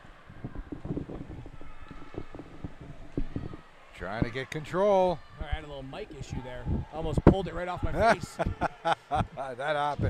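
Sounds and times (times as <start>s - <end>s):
microphone bumps and rubbing: 0.4s - 4.3s.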